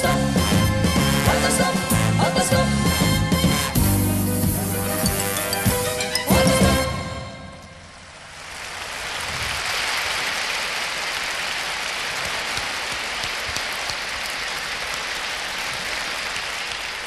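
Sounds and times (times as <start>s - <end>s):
large audience applauding: 8.3s - 17.0s.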